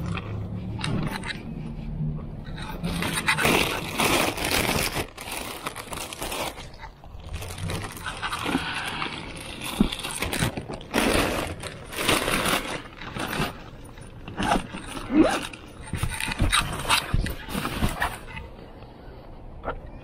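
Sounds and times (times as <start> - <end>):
bags rustling and crinkling: 2.5 - 18.7.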